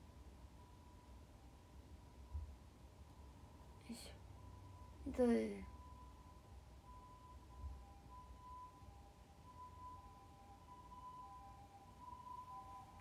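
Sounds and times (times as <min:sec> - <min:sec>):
faint thin steady whine: 0:00.0 - 0:13.0.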